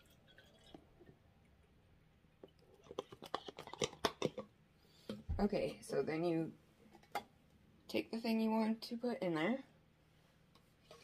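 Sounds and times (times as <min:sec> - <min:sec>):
plastic bottle crinkling: 0:02.4 - 0:04.5.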